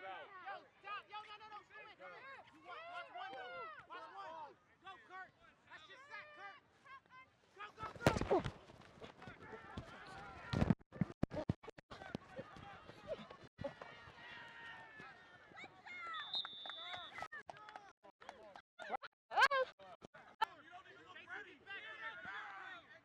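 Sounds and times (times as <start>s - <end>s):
players colliding: 7.8s - 12.7s.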